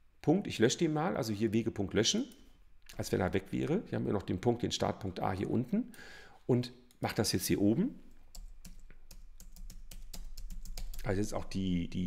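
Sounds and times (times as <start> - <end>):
typing on computer keyboard: 8.3 - 11.1.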